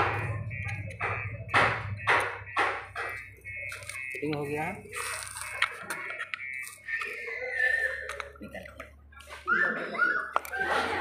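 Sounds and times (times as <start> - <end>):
brake parts clicking and scraping: 2.2 - 9.4, 10.3 - 11.0.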